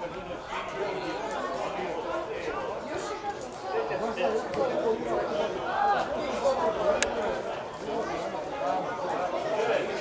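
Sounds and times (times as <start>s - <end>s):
chatter of several voices: 0.0s - 10.0s.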